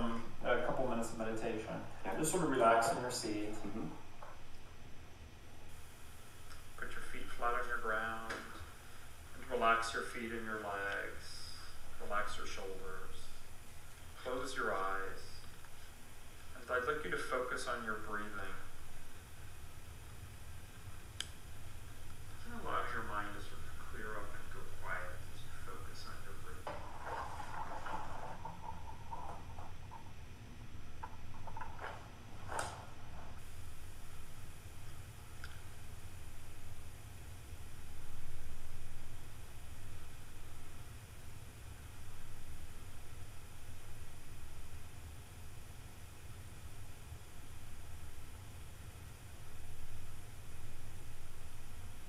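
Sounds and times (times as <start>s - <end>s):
low steady hum: 0.0s - 52.0s.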